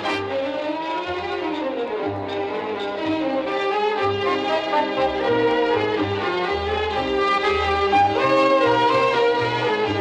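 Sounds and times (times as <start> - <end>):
violins playing a gliding melody: 0.0 - 10.0.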